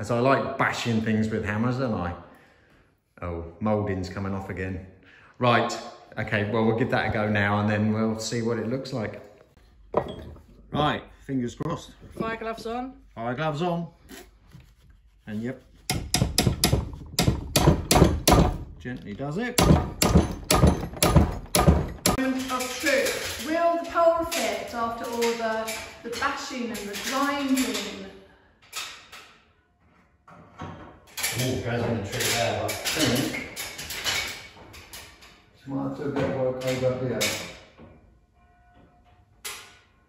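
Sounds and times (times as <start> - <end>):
dull hammer strikes on metal: 15.8 - 18.7, 19.6 - 22.2.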